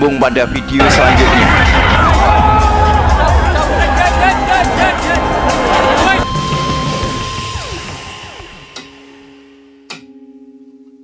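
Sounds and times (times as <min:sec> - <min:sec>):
low hum pulsing rapidly: 0:00.8 - 0:08.8.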